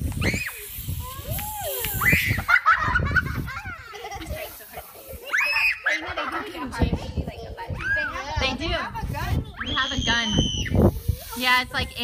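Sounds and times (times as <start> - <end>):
children shouting and shrieking: 0.0 - 12.0.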